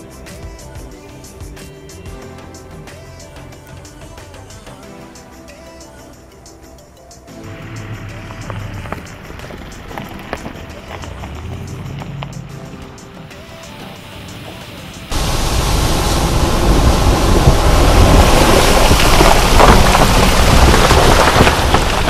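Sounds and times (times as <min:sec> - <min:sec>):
diesel engine running: 0:07.5 - 0:13.0, 0:13.8 - 0:22.0
muddy water splashing: 0:15.1 - 0:22.0.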